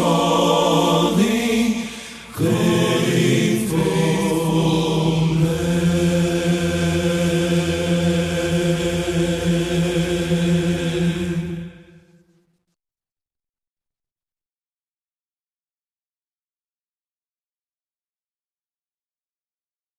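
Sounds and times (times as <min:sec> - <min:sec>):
men's choir singing: 0:00.0 - 0:12.1.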